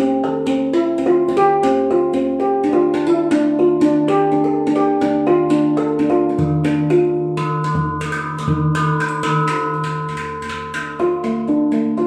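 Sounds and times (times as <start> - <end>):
handpan notes: 0.0 - 12.0.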